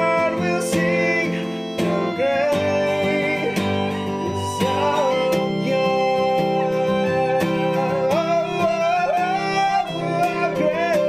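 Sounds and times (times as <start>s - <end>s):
man singing: 0.0s - 11.0s
strummed acoustic guitar: 0.0s - 11.0s.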